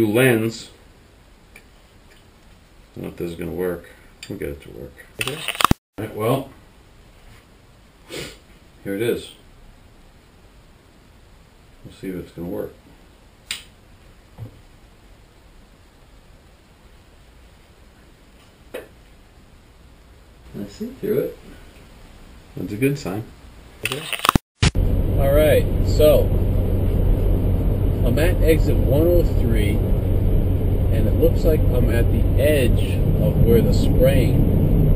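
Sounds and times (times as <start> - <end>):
low steady background hiss: 0.0 - 5.2, 6.0 - 23.8, 24.8 - 34.4
sharp gear clicks: 5.2 - 5.8, 23.8 - 24.4.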